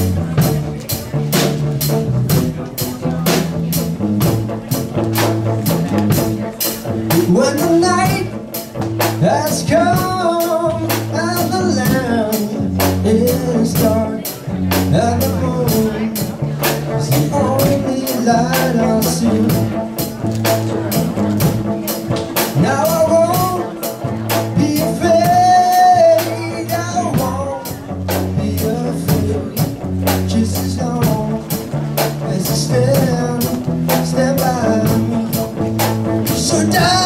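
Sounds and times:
drum kit beat: 0.0 - 37.0
electric bass: 0.0 - 37.0
electric guitar: 0.0 - 37.0
man singing lead vocal: 7.1 - 8.5, 9.2 - 20.0, 22.4 - 37.0.

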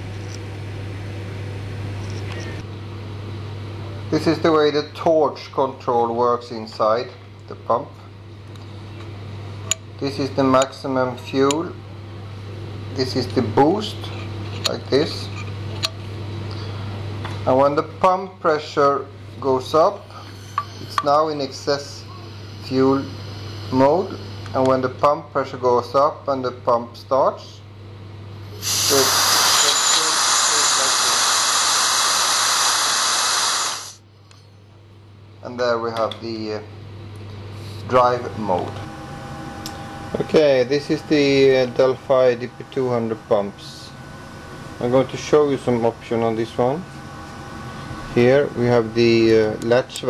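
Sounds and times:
low steady hum: 0.0 - 32.4
compressed air hissing: 28.4 - 34.0.

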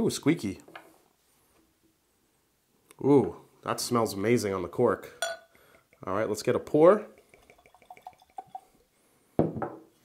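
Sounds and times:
liquid glugging into a glass: 7.2 - 8.8.

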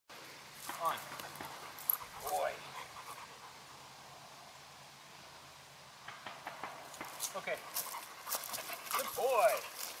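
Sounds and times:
dog panting: 1.0 - 3.9, 7.5 - 10.0.

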